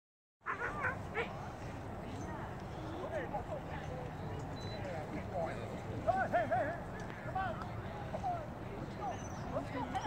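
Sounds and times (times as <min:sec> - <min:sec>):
dog yipping: 0:00.5 - 0:01.3.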